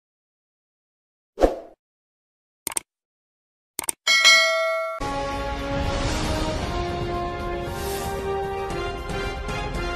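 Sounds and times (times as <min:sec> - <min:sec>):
notification bell chime: 0:04.1 - 0:05.0.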